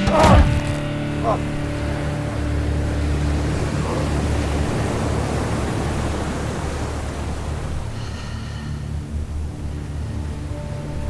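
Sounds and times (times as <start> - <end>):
background music: 0.0 - 11.0
rushing water: 0.0 - 11.0.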